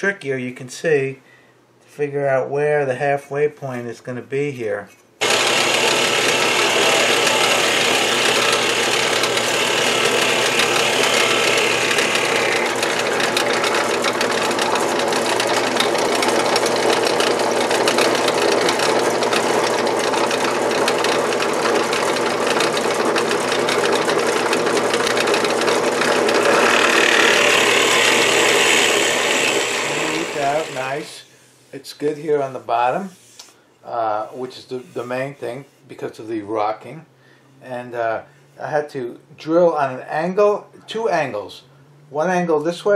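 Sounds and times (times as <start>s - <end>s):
drill bit cutting wood: 5.2s - 31.1s
drill press motor running: 5.2s - 31.1s.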